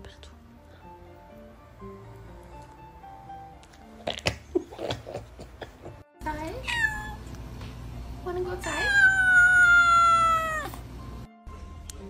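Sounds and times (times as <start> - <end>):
kitten meowing: 6.6 - 7.2, 8.6 - 10.8.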